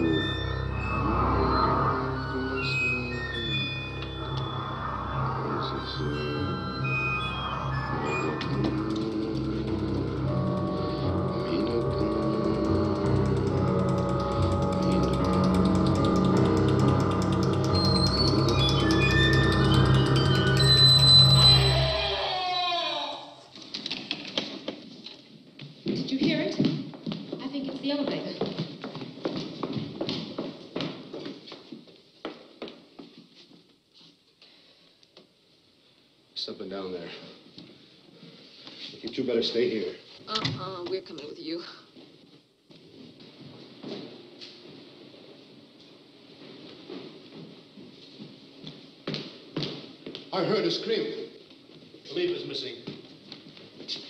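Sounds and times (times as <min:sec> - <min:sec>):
horror film score: 0:00.0 - 0:22.5.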